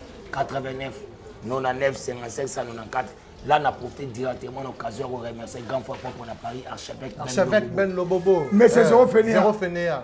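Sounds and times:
man speaking: 0.2 - 10.0.

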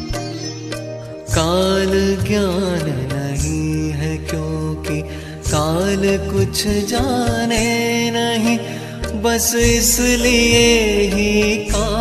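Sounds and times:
person singing devotional song: 0.0 - 12.0.

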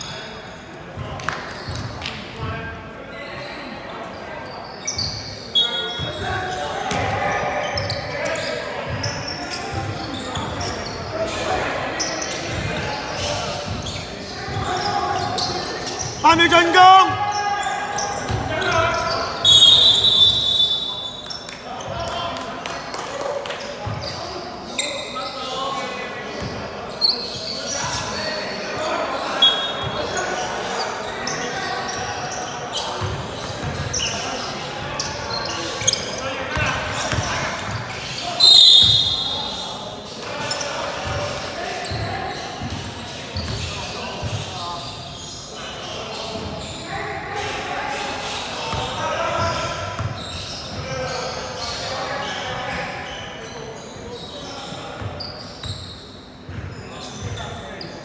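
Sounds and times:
players' voices: 0.0 - 58.0
shoe squeaks: 1.5 - 1.9, 3.1 - 22.1, 23.8 - 25.6, 26.3 - 46.9, 48.3 - 58.0
basketball bouncing on court: 6.9 - 7.1, 18.1 - 18.7, 33.0 - 34.0.

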